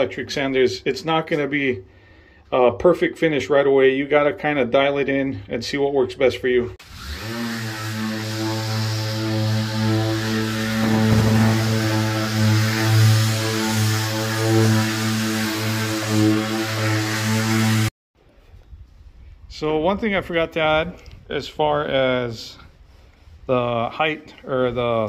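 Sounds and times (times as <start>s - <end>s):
electric drywall sander humming: 6.8s - 17.9s.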